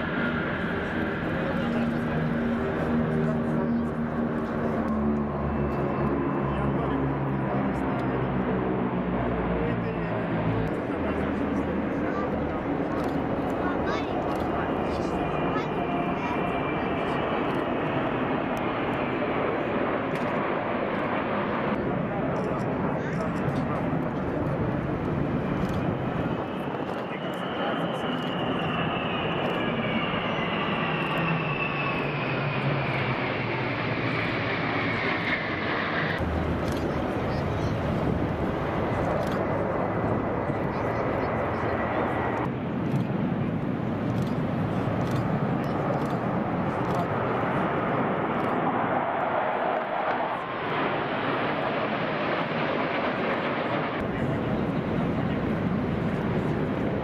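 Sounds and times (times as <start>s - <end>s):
high jet engine whine: 0.0s - 57.0s
jet roar: 0.0s - 57.0s.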